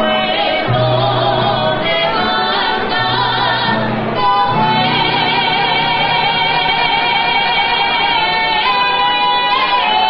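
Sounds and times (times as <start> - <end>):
acoustic guitar: 0.0 - 10.0
man and woman singing duet: 0.0 - 10.0.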